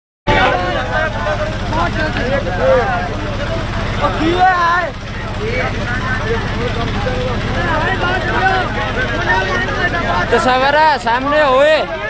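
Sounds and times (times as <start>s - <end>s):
men calling out: 0.3s - 12.0s.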